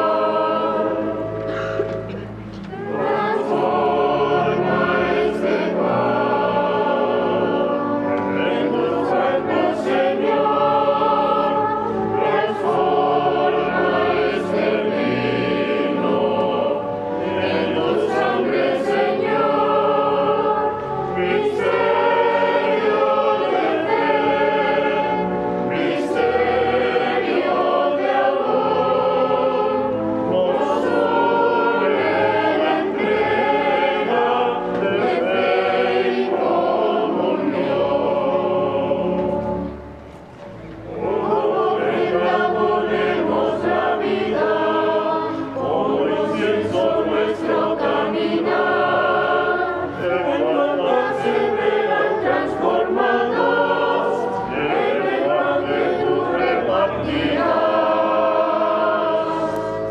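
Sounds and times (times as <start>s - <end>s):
church choir singing a hymn: 0.0s - 59.9s.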